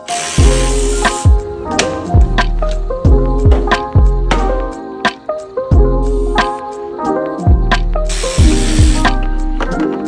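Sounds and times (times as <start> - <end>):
background music with bass hits: 0.4 - 4.8, 7.6 - 9.9.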